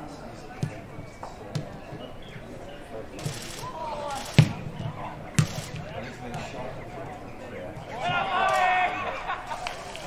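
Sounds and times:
football kick thuds: 0.6s - 2.1s, 4.4s - 6.4s.

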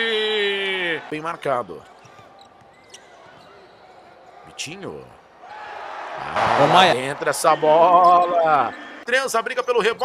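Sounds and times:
sneakers squeaking on hardwood: 1.8s - 4.4s.

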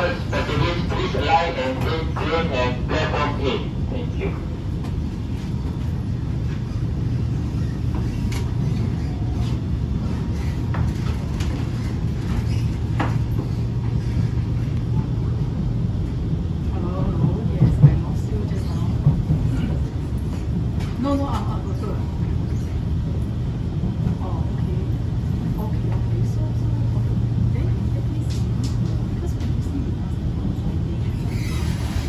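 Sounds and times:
train wheels rumbling: 0.0s - 32.0s.

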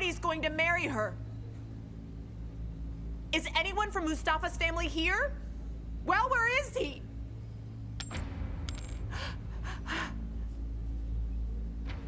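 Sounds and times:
low steady hum: 0.0s - 12.0s
high ringing clink: 8.0s - 9.1s.

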